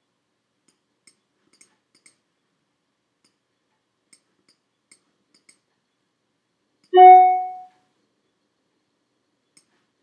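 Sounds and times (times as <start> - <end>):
computer mouse clicks: 0.7 - 2.2
chime-like note: 7.0 - 7.7.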